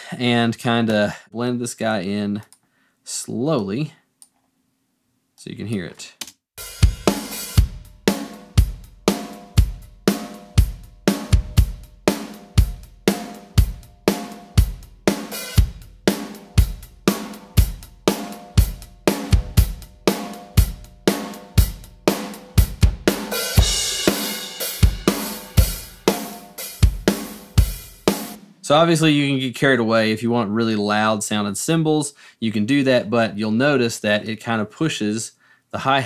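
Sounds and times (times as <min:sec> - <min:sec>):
kick and snare drum hits: 0:06.6 - 0:28.5
hi-hat and cymbals: 0:06.6 - 0:29.1.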